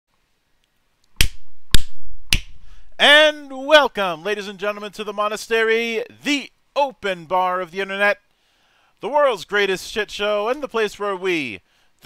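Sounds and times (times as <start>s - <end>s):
finger snaps: 1.1s - 2.6s.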